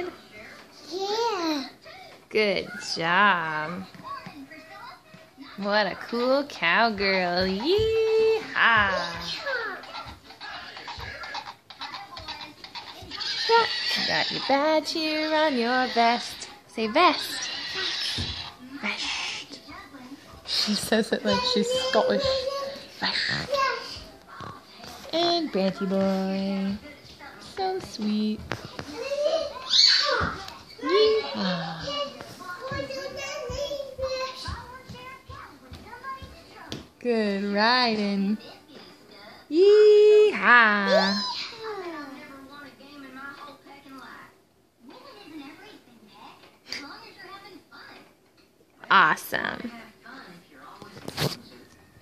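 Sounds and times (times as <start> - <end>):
toy clip-clop hoofbeats: 9.5 - 13.6.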